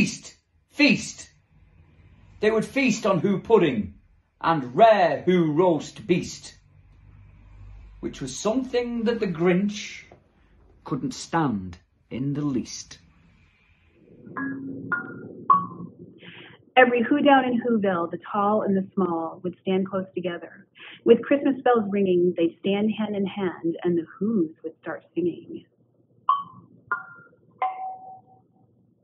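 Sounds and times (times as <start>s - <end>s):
low steady tone: 0.0s - 16.4s
bell-like chimes: 27.1s - 28.4s.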